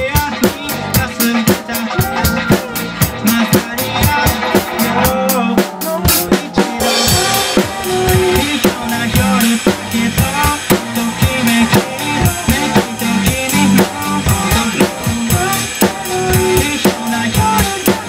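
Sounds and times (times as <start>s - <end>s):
acoustic drum kit beat: 0.0s - 18.0s
pop backing track: 0.0s - 18.0s.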